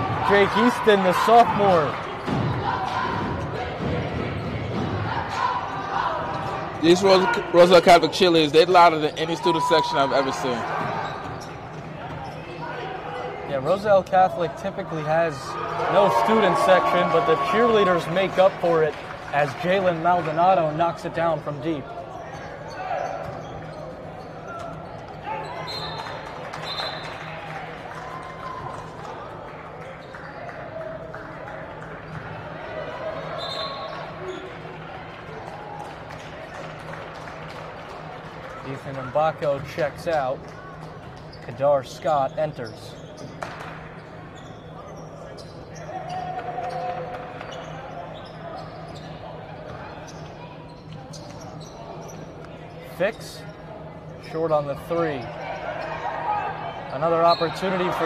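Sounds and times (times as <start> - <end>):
sneakers squeaking: 0.0 - 18.5, 20.1 - 37.3, 39.4 - 58.0
crowd voices echoing: 0.0 - 23.5
voices in echoing gym: 0.0 - 58.0.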